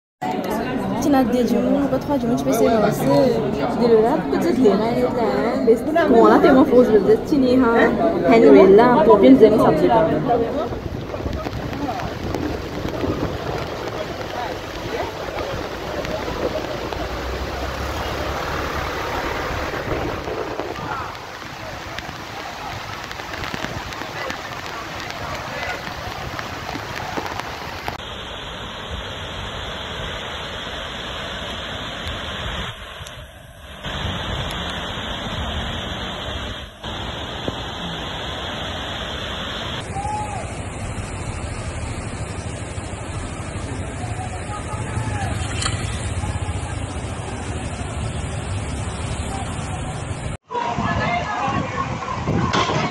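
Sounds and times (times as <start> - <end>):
indistinct voices of onlookers: 0.2 - 27.5, 43.3 - 52.9
floodwater rushing: 0.2 - 52.9
rain: 0.2 - 52.9.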